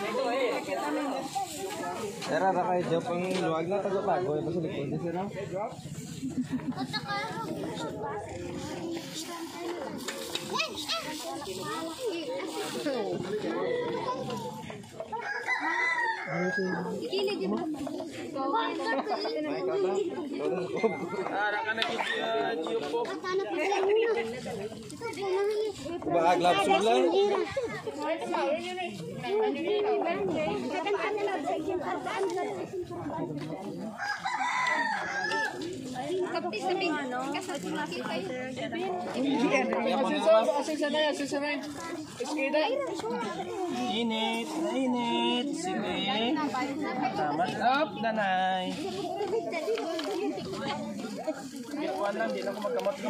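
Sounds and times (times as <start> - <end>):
children chattering: 0.0 - 53.0.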